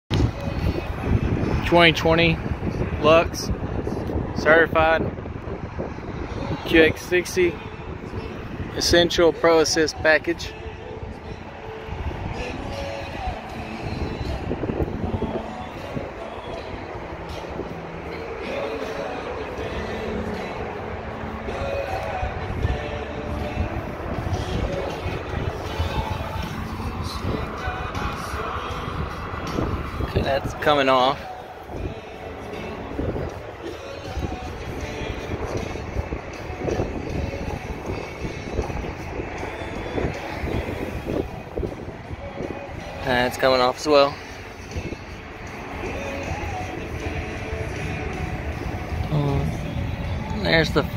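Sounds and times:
low rumbling: 0.1 - 50.9
wind buffeting microphone: 0.1 - 50.9.

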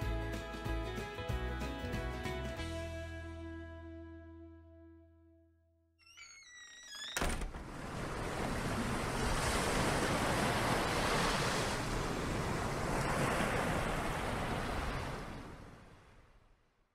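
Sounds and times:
ocean waves rushing: 7.5 - 16.2.

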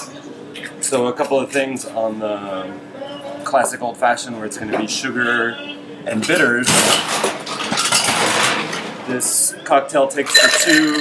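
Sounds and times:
ice cubes clinking in glass: 10.3 - 11.0.

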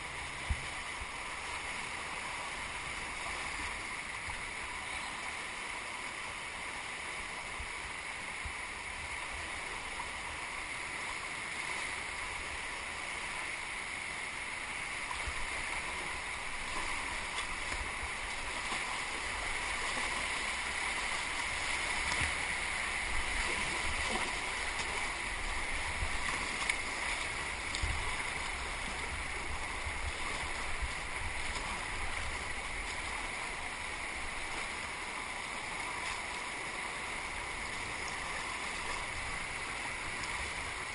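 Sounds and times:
river water rushing: 0.0 - 40.9
water splashes: 0.0 - 40.9.

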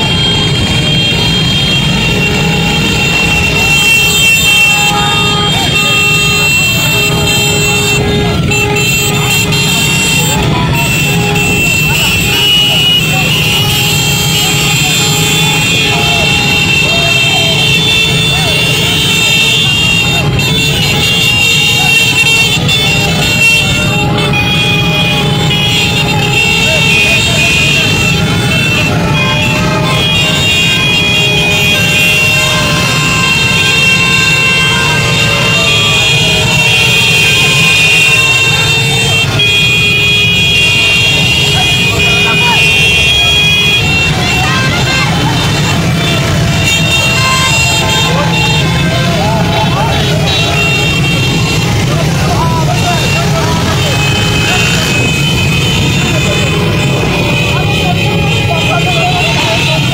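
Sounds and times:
large crowd din: 0.0 - 59.9
vehicle horns: 0.0 - 59.9.

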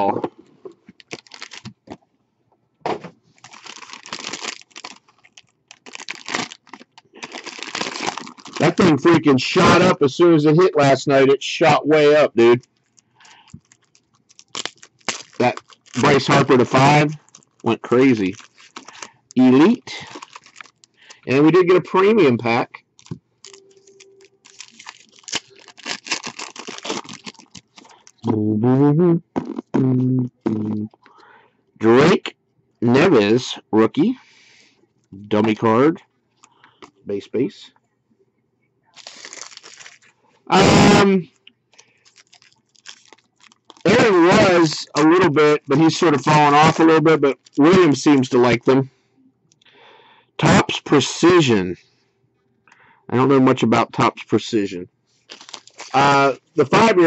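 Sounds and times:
foil wrapper tearing and crinkling: 1.0 - 1.7, 3.4 - 9.0, 12.8 - 21.2, 23.0 - 28.2, 39.0 - 40.1, 41.8 - 44.6, 45.9 - 47.6, 55.3 - 56.2
cards being handled: 23.0 - 28.3.

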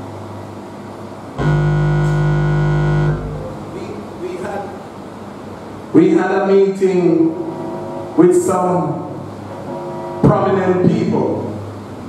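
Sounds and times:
keyboard holding a chord: 1.4 - 3.8.

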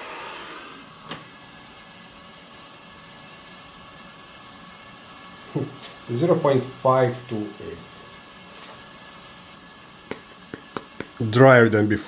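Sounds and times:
fan whooshing: 0.0 - 12.0.

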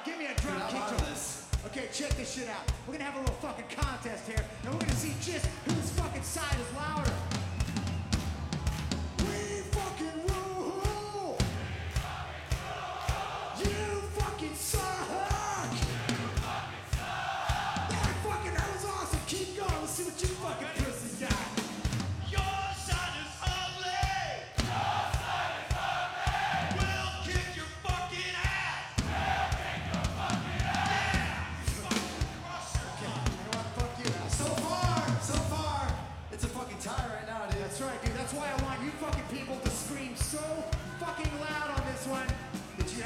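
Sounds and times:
crowd yelling and singing along: 0.0 - 43.0
rock band playing: 4.4 - 11.9, 29.0 - 43.0.

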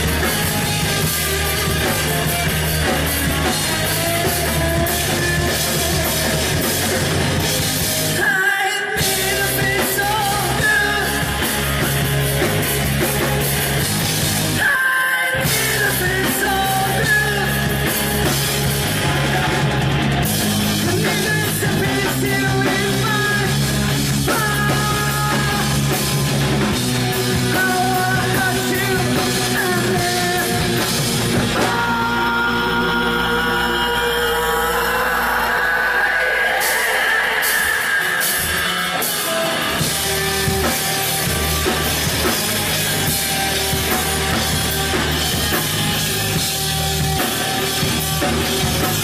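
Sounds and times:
drum kit: 0.0 - 49.0
electric bass: 0.0 - 49.0
electric guitar: 0.0 - 49.0.

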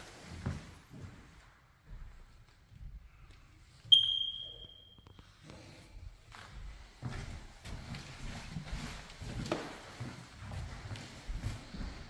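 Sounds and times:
footsteps on hardwood floor: 0.0 - 3.5, 5.5 - 12.0
smoke detector chirp: 3.9 - 5.1.

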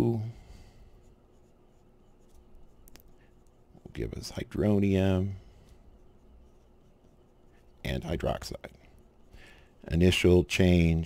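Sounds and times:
pen writing on paper: 5.9 - 7.8.

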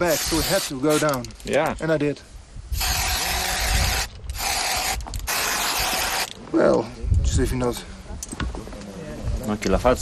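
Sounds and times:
hissing bursts: 0.0 - 1.3, 2.7 - 6.4.

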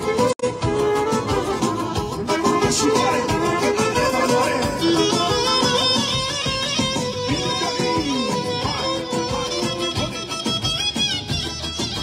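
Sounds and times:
brass melody: 0.0 - 11.2
steady drum beat: 0.0 - 12.0.

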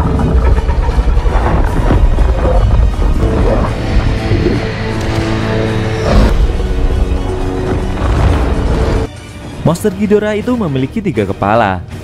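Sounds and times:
film score sustained tones: 0.0 - 9.2.

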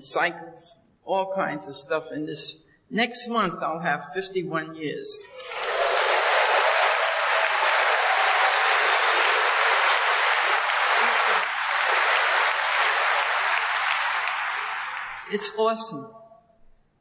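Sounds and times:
audience applauding: 5.3 - 15.5.

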